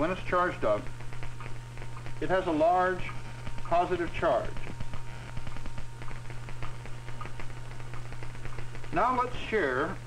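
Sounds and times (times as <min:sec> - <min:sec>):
generator low hum: 0:00.0 - 0:10.0
crackling clicks: 0:00.7 - 0:02.3, 0:02.9 - 0:09.2.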